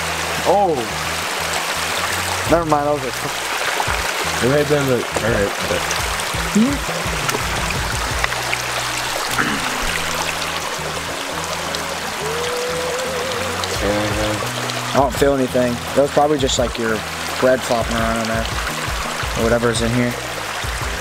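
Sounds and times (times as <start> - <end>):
background music: 0.0 - 21.0
creek water running: 0.0 - 21.0.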